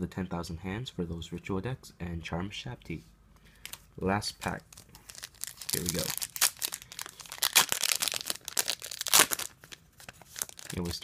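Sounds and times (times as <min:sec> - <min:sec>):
foil wrapper crinkling: 0:04.6 - 0:11.0
foil pack ripping: 0:04.7 - 0:11.0.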